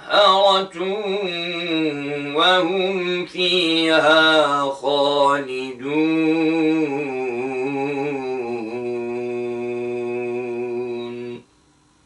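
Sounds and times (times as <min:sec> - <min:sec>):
man reciting in long held note: 0:00.0 - 0:11.5.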